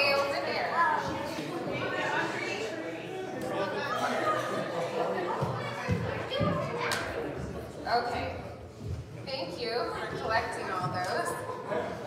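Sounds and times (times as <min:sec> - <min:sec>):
children chattering: 0:00.0 - 0:08.2.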